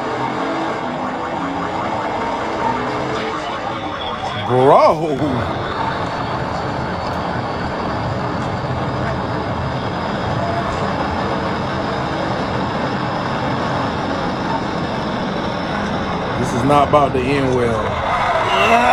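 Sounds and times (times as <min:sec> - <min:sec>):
car engine and road noise: 0:00.0 - 0:18.9.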